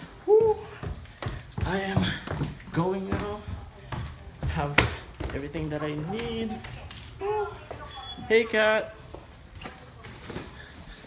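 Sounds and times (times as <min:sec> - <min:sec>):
footsteps going down stairs: 0:00.0 - 0:11.0.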